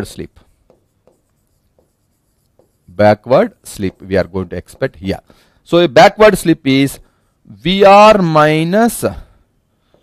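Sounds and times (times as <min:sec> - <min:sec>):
stylus writing on screen: 0:00.0 - 0:05.3.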